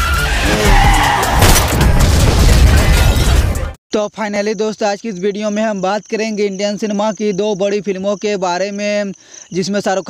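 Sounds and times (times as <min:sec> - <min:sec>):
film sound effects: 0:00.0 - 0:03.8.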